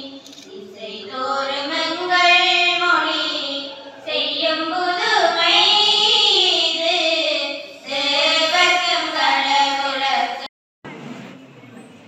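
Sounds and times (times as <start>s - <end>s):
young women singing together: 0.0s - 10.5s.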